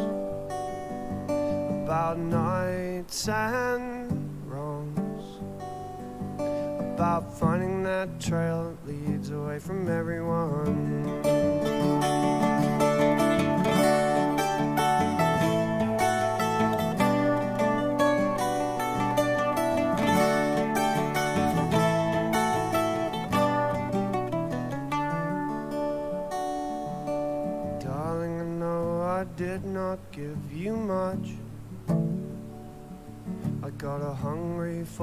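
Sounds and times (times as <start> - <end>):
mandolin playing: 0.0 - 1.8, 10.7 - 27.8
person singing: 0.0 - 5.5, 6.6 - 25.8, 27.6 - 31.5, 33.5 - 35.0
acoustic guitar strumming: 0.0 - 35.0.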